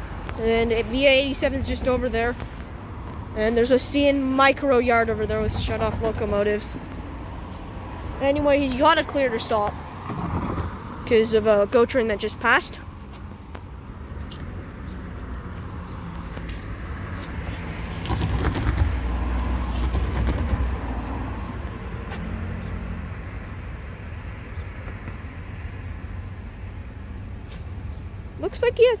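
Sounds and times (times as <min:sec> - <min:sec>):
vehicle passing on street: 0:00.0 - 0:29.0.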